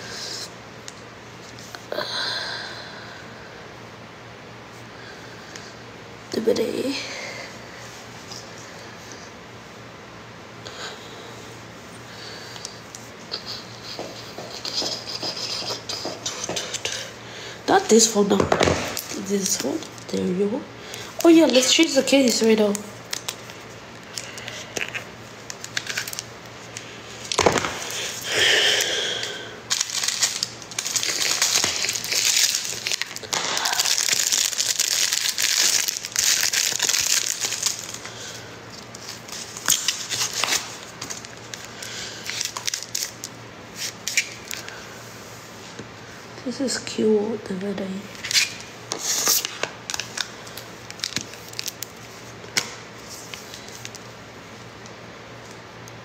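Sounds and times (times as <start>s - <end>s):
packaging crinkling and rustling: 18.3s - 20.1s, 20.9s - 28.3s, 29.2s - 44.8s, 48.1s - 54.1s.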